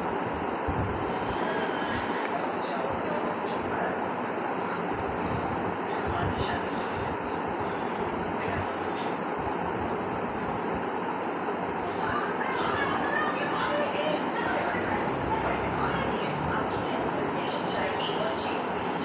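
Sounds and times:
steady background noise: 0:00.0 - 0:19.0.

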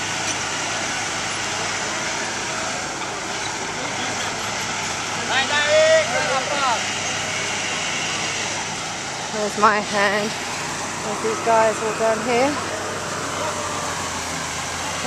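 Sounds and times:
truck engine running: 0:00.0 - 0:15.0
man calling out: 0:05.3 - 0:06.8.

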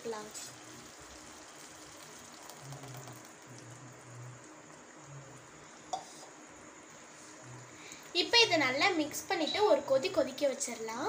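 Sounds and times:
gravy bubbling in a pan: 0:00.0 - 0:10.7.

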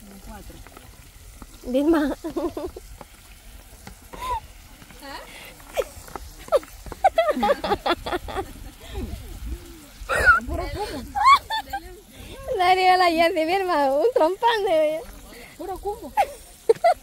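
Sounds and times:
food sizzling in pan: 0:00.0 - 0:17.0
woman laughing: 0:02.0 - 0:02.8, 0:05.7 - 0:09.5, 0:10.1 - 0:12.6, 0:16.0 - 0:17.0
voices: 0:04.1 - 0:17.0.

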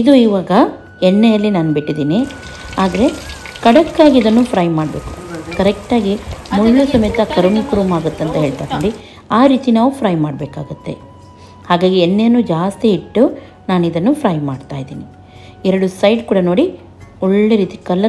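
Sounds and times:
woman talking: 0:00.0 - 0:11.0
fish sizzling in oil: 0:02.2 - 0:09.0.

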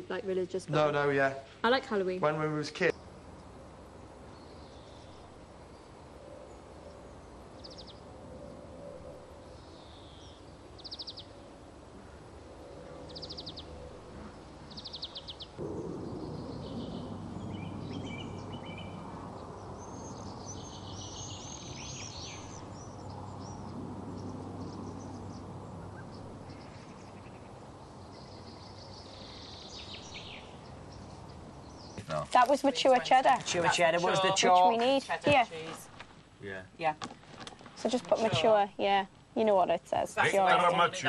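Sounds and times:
birds chirping: 0:00.0 - 0:11.6, 0:12.6 - 0:36.0
outdoor background noise: 0:00.0 - 0:41.0.

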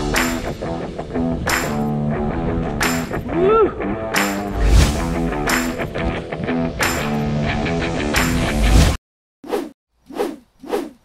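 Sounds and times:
short whooshes: 0:04.5 - 0:05.2.

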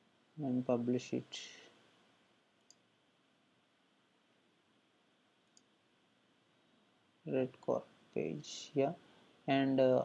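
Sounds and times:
faint computer mouse clicks: 0:02.6 - 0:02.8, 0:05.4 - 0:05.7.

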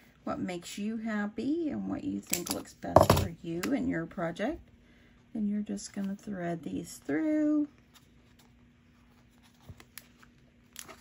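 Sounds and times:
paper and candy wrapper crinkling: 0:08.0 - 0:11.0.

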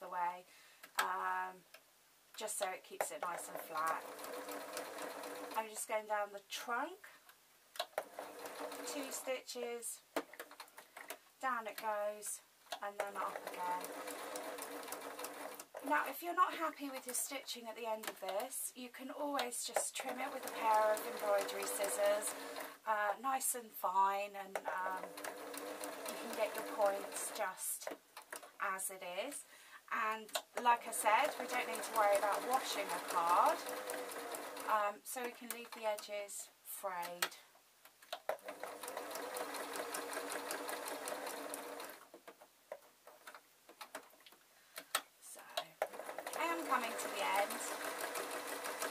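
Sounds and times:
electric sewing machine running: 0:03.8 - 0:05.6, 0:08.0 - 0:09.2, 0:13.3 - 0:15.6, 0:20.2 - 0:22.8, 0:25.0 - 0:27.4, 0:31.0 - 0:34.7, 0:38.4 - 0:42.0, 0:45.9 - 0:48.9.

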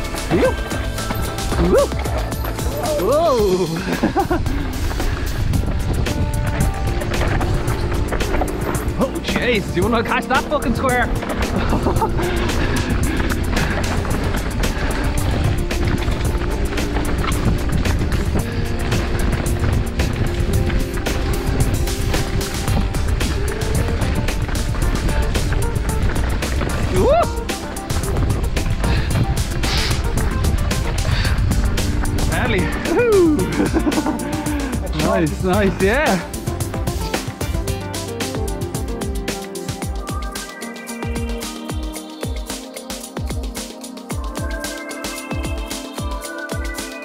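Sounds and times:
mountain bike rattling on dirt trail: 0:00.0 - 0:39.2
music playing: 0:00.0 - 0:47.0
person laughing: 0:00.3 - 0:00.7, 0:03.3 - 0:04.8, 0:11.4 - 0:13.0, 0:32.6 - 0:34.9
wind on microphone: 0:03.8 - 0:09.0, 0:11.1 - 0:33.7.

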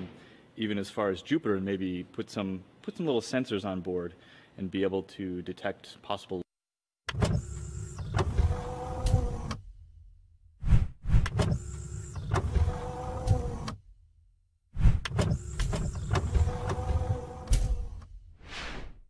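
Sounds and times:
mechanical sliding and clunking sweep: 0:07.1 - 0:09.9, 0:10.6 - 0:13.9, 0:14.8 - 0:19.0.

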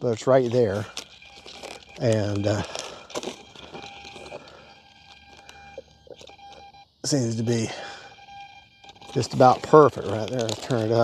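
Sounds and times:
faint thin steady tone: 0:00.0 - 0:11.0
handling clicks and knocks: 0:00.2 - 0:06.7, 0:08.8 - 0:11.0.

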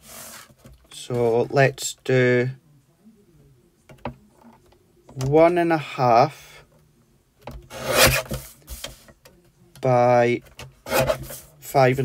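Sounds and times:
card rasping across plastic: 0:07.7 - 0:09.0, 0:10.8 - 0:11.5.

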